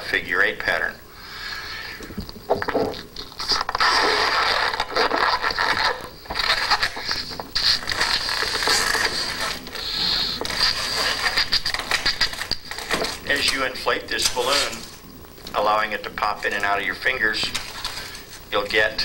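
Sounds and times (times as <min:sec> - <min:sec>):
latex balloon squeaking: 0:02.0 - 0:15.0
balloon being blown up: 0:02.5 - 0:12.7.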